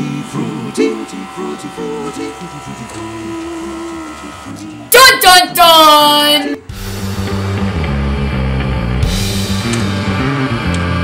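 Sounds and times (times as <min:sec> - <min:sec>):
young voices chanting: 0:00.0 - 0:06.6
loud burst of music: 0:03.6 - 0:11.0.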